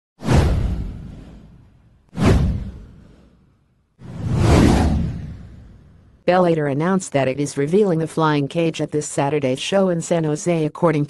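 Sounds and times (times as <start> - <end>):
deep whoosh sound effects: 0.2 - 6.2.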